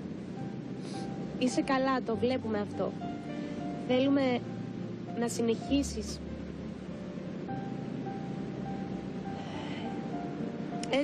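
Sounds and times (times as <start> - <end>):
soft music with long held notes: 0.0 - 11.0
wind: 0.0 - 11.0.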